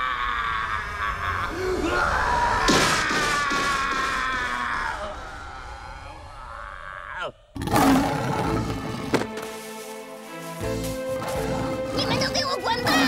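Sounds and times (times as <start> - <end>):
lion roaring: 5.1 - 9.2.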